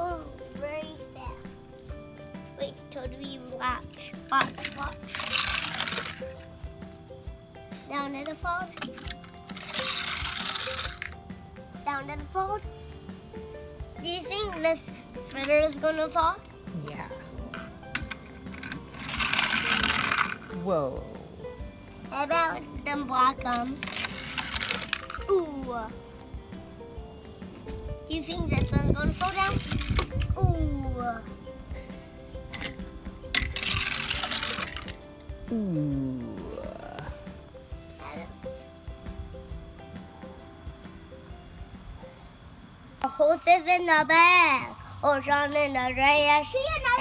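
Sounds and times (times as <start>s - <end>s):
music: 0.0s - 47.0s
toy car rolling on plastic track: 3.9s - 6.5s, 8.2s - 11.2s, 17.6s - 20.6s, 23.4s - 25.3s, 28.6s - 30.3s, 32.5s - 35.0s.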